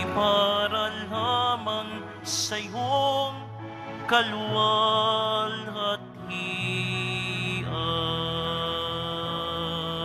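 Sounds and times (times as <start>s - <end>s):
hymn music with held notes: 0.0s - 10.0s.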